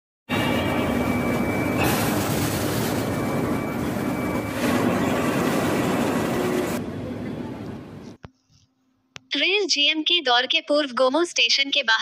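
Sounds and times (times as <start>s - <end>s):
printing press running: 0.3s - 6.8s.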